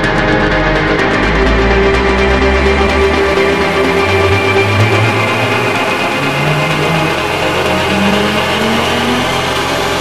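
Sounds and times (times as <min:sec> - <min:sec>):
dense sustained synth: 0:00.0 - 0:10.0
low notes stepping upward: 0:00.0 - 0:10.0.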